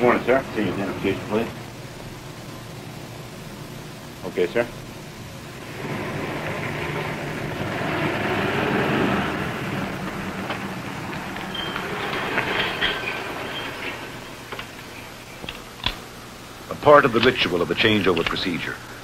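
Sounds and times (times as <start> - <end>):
motor vehicle passing: 5.6 - 15.2
faint squeaks: 5.7 - 15.5.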